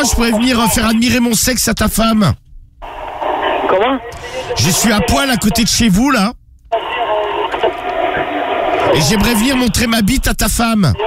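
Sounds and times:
muffled voices over phone: 2.8s - 11.0s.

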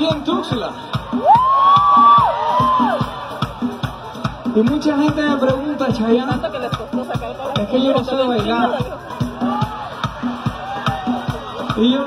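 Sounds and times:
band percussion beat: 0.0s - 12.0s
crowd cheering: 0.9s - 4.3s, 9.0s - 12.0s.

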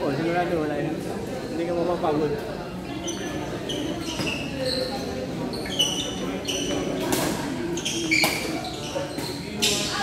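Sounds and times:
crowd chatter: 0.0s - 10.0s
shoes squeaking on court floor: 2.8s - 10.0s.

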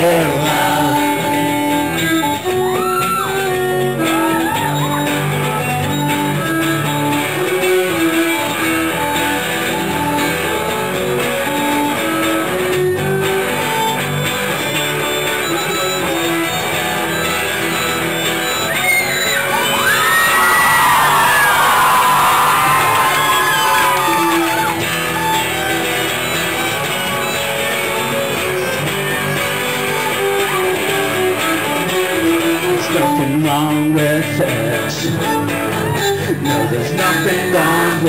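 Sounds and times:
live band playing: 0.0s - 38.0s
violin gliding high notes: 0.7s - 33.2s.

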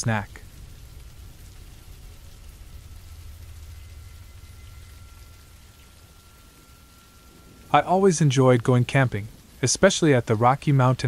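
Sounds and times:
soft hiss: 0.0s - 11.0s
thin steady high whine: 0.0s - 11.0s
dark ambient music: 0.3s - 9.6s
low rumble: 0.3s - 9.6s.

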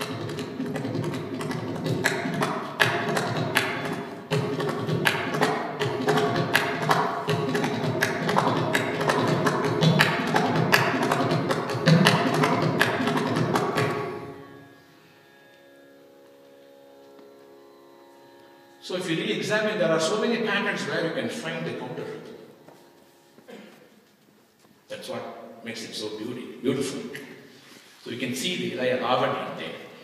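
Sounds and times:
mridangam drumming: 0.0s - 14.2s.

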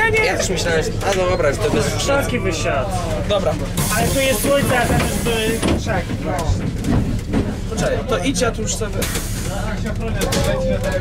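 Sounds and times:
diesel bus engine rumble: 0.0s - 11.0s
people talking: 0.0s - 11.0s.

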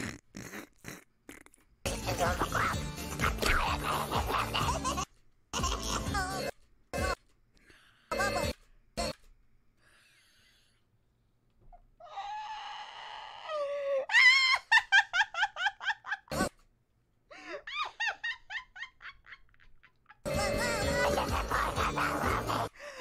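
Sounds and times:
music: 1.9s - 5.0s, 5.6s - 7.2s, 20.3s - 22.7s
rapid laughter: 2.1s - 6.2s, 17.5s - 23.0s.

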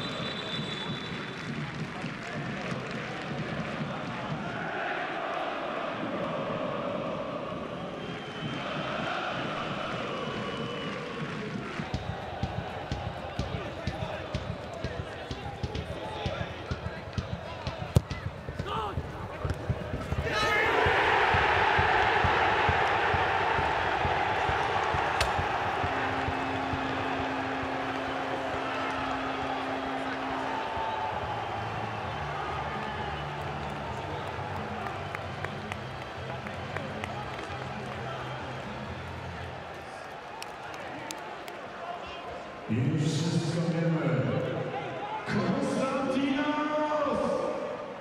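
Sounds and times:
stadium crowd noise: 0.0s - 48.0s.

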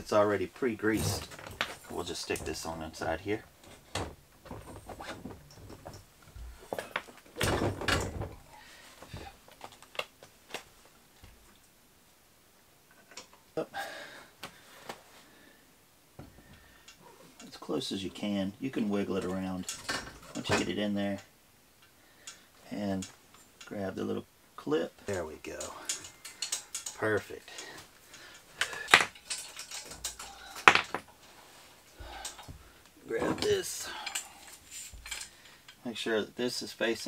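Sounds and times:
light metal clicks and knocks: 25.1s - 31.1s, 33.2s - 35.8s.

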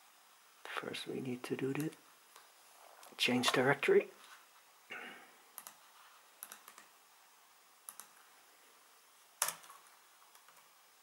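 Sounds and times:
computer keyboard key clicks: 7.9s - 8.1s, 9.4s - 10.6s.

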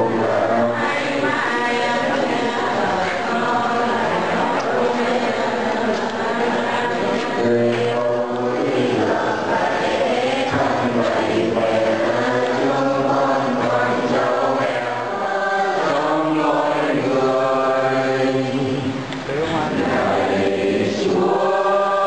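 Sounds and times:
congregation chanting: 0.0s - 22.0s.

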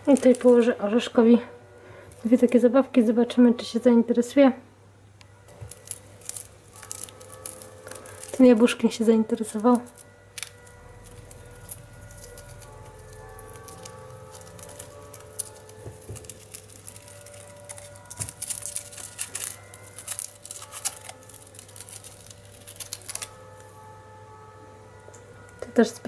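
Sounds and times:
soft background music: 5.2s - 26.0s.

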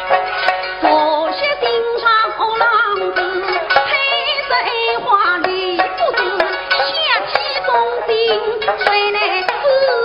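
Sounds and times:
plucked lutes: 0.0s - 10.0s
woman singing with vibrato: 0.8s - 10.0s.

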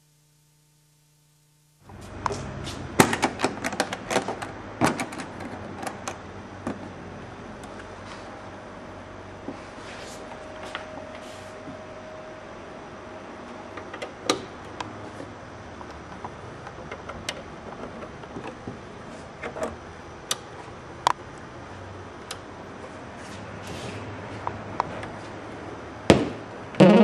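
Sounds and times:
low room hum: 0.0s - 27.0s.

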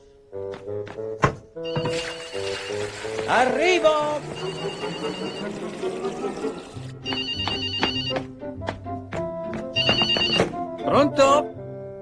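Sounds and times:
background music: 0.0s - 12.0s
telephone ringing: 4.2s - 5.7s, 7.0s - 8.2s, 9.8s - 10.5s.

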